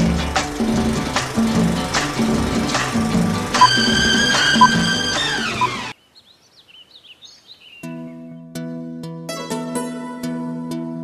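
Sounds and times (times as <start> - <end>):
plucked-string music: 0.0 - 5.8
small birds chirping: 4.6 - 8.4.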